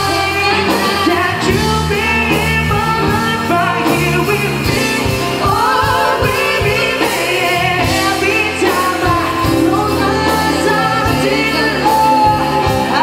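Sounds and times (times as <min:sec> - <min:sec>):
bass and drums: 0:00.0 - 0:13.0
female backing vocals: 0:00.0 - 0:13.0
male lead singer with vibrato: 0:00.0 - 0:13.0.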